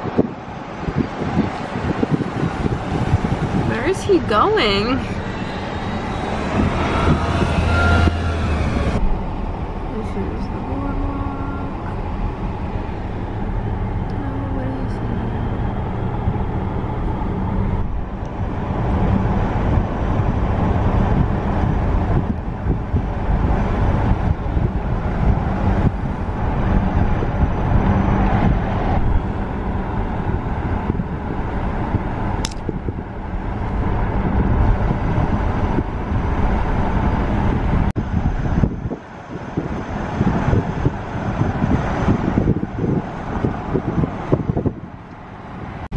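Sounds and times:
car road noise from inside: 0.0s - 45.9s.

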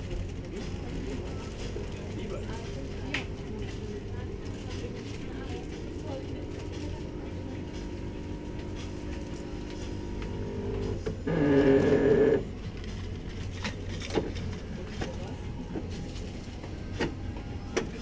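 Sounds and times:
coffee machine running: 0.0s - 18.0s.

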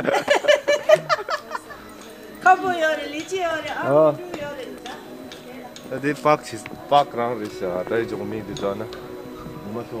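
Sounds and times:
footsteps on paved path: 2.4s - 9.6s.

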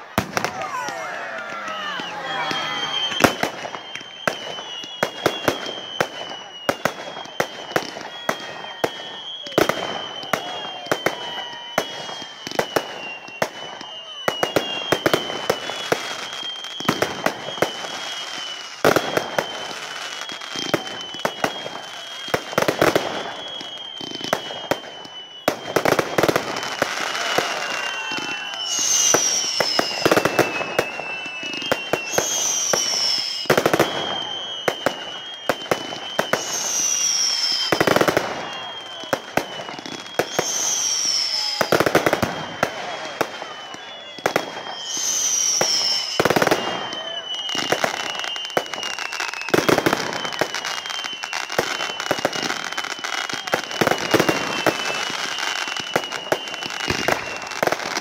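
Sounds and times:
falling firework whistles: 0.0s - 58.0s
fireworks bursting with sharp bangs: 0.0s - 58.0s
hissing crackling fireworks: 0.0s - 58.0s.

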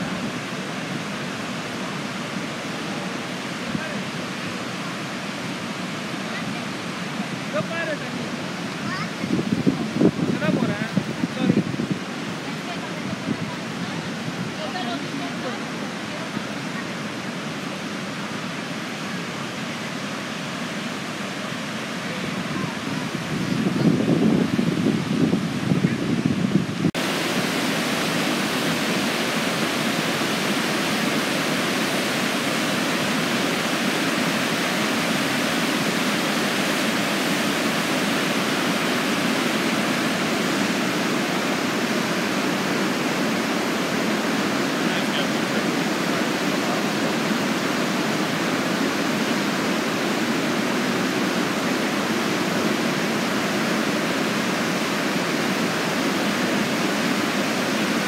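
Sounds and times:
rush of white water rapids: 0.0s - 58.0s.

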